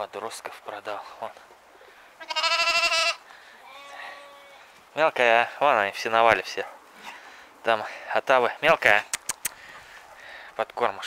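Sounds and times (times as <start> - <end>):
lamb bleating: 2.2 - 4.7.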